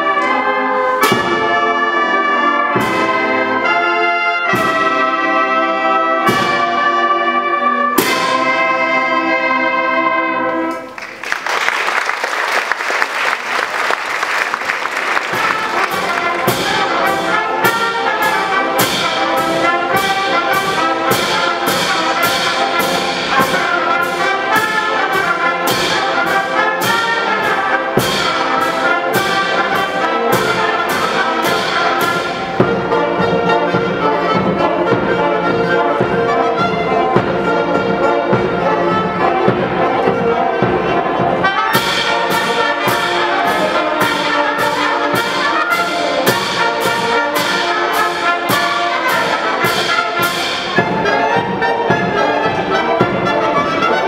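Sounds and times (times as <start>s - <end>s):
brass band playing: 0.0s - 54.0s.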